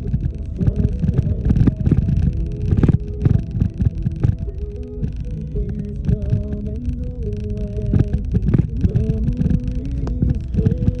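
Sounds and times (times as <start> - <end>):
low humming tone: 0.0 - 11.0.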